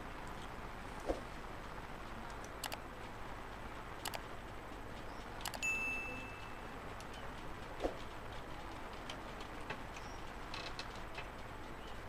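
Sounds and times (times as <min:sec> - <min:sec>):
quick clicks: 0:02.4 - 0:02.8, 0:04.0 - 0:04.3, 0:05.4 - 0:05.6
bright bell ding: 0:05.6 - 0:06.7.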